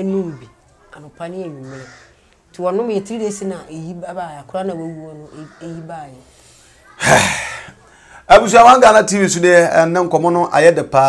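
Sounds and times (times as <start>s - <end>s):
person gasping loudly: 7.0s - 8.3s.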